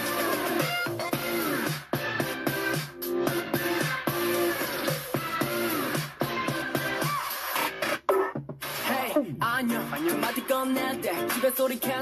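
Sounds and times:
dance track with group vocals: 0.0s - 8.0s, 8.6s - 12.0s.

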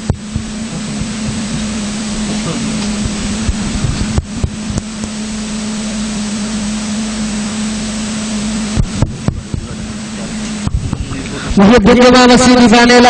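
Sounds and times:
loud steady hiss: 0.0s - 13.0s
low hum: 0.0s - 13.0s.

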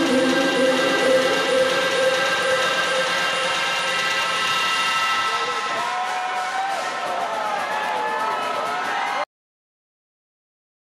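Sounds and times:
held synth chords over club speakers: 0.0s - 6.1s.

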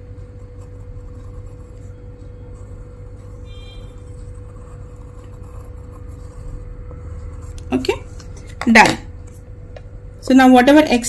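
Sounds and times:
steady low hum: 0.0s - 11.0s
pencil scratching on paper: 0.2s - 8.5s.

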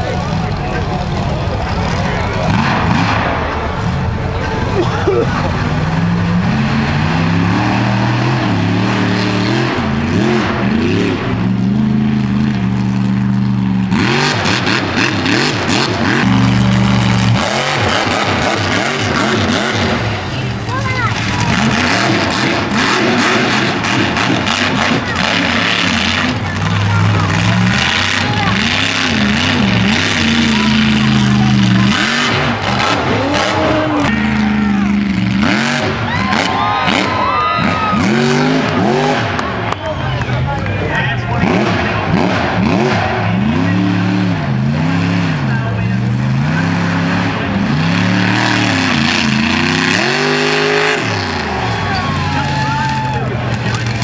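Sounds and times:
truck engine revving: 0.0s - 54.0s
crowd shouting: 24.5s - 43.9s, 48.8s - 54.0s.

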